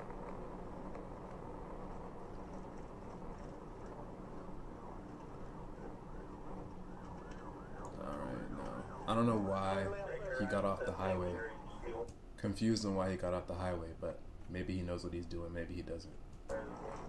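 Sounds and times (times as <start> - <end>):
car engine and road rumble: 0.0 - 7.8
police siren yelp: 6.6 - 12.0.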